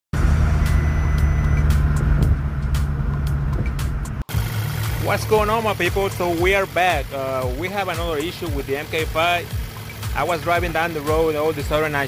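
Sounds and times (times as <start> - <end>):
engine and road drone: 0.1 - 12.0
thin high tone: 0.2 - 2.0.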